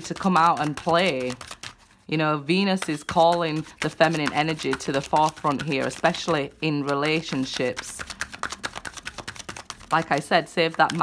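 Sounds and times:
cards being shuffled: 0.0s - 2.0s, 2.6s - 11.0s.

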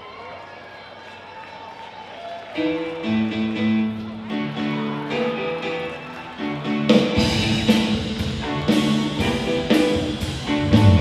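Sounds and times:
audience talking: 0.0s - 11.0s.

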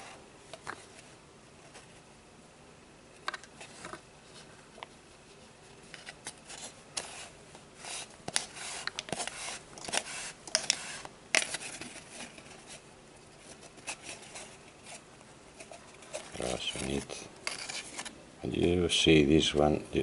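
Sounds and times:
cord scraping and rustling: 3.4s - 18.2s.

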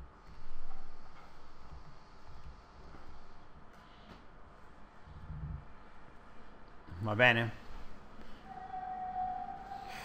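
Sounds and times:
steady pitched tone: 8.4s - 10.0s.

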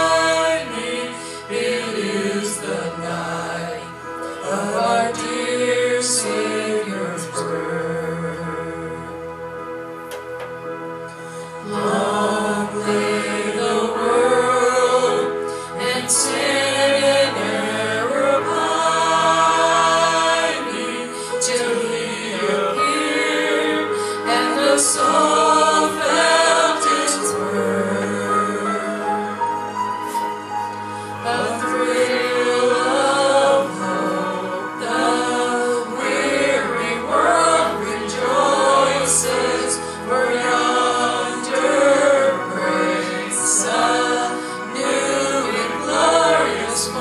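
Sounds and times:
group of people singing: 0.0s - 9.2s, 11.6s - 30.2s, 31.0s - 47.0s
held instrumental accompaniment: 0.0s - 47.0s.

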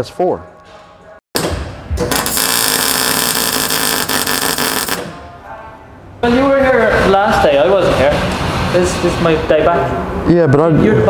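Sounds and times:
welder arc crackling: 2.0s - 5.1s.

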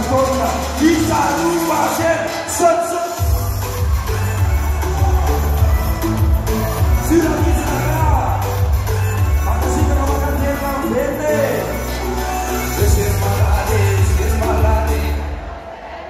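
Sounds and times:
heavy bass: 0.0s - 2.2s, 3.2s - 15.7s
crowd noise: 0.0s - 16.0s
loud live music over pa: 0.0s - 16.0s.

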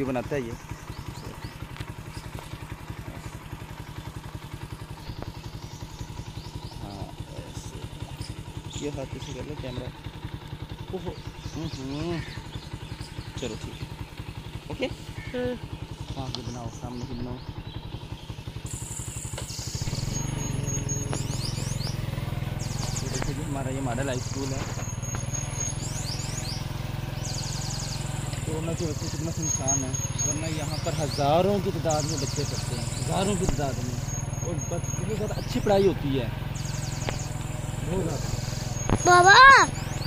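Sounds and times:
motorcycle engine running: 0.0s - 40.0s
faint bird chirps: 0.1s - 40.0s
small motorcycle engine putter: 1.0s - 3.9s, 4.8s - 6.7s, 18.6s - 21.9s, 22.6s - 26.0s.

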